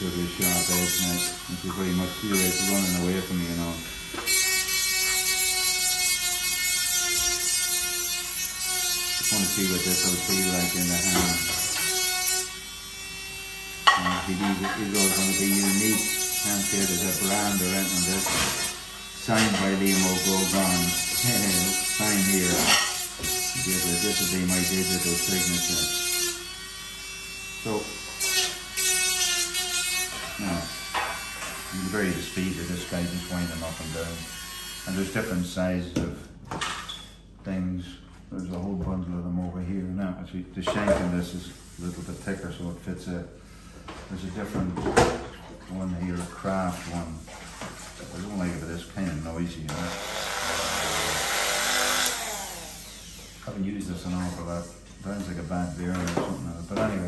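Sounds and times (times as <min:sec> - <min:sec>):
rotary engraver grinding plastic: 0:00.1 - 0:26.6, 0:49.8 - 0:53.4
scratchy grinding on plastic: 0:14.2 - 0:25.9
rotary engraver whine: 0:49.8 - 0:53.4.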